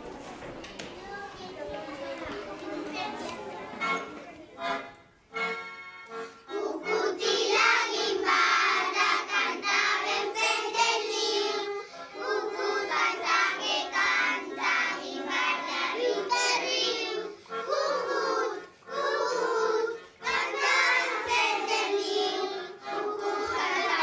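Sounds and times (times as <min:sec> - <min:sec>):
children's choir singing: 0:00.0 - 0:24.0.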